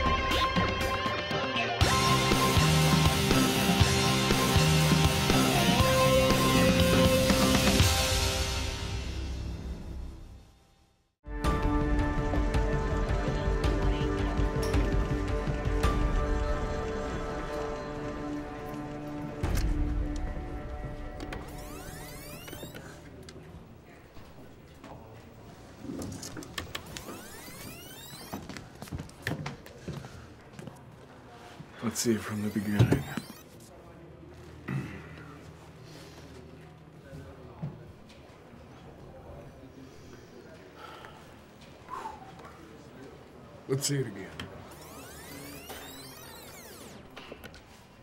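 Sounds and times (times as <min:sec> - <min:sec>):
tape motor whining: 0:21.4 - 0:22.9, 0:26.6 - 0:28.4, 0:44.6 - 0:47.2.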